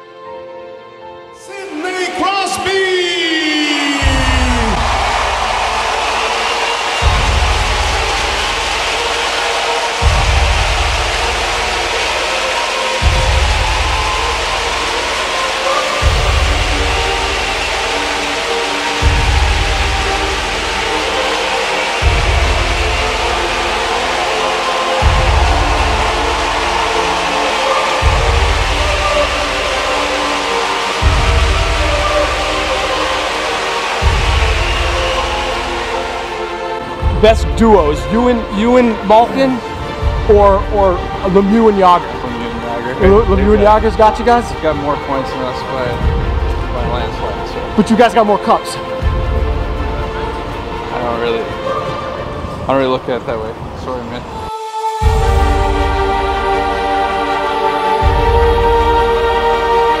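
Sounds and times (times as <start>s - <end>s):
background music with sustained tones: 0.0s - 60.0s.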